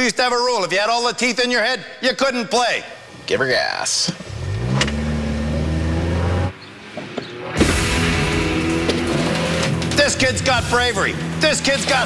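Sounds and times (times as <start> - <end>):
car engine revving: 4.2 - 12.0.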